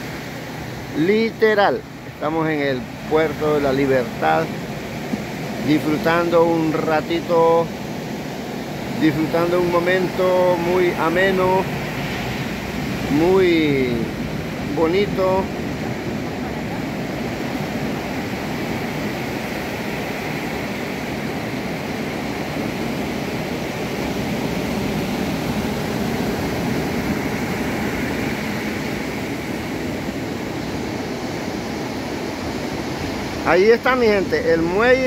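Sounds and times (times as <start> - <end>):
ocean surf breaking: 0.0 - 35.0.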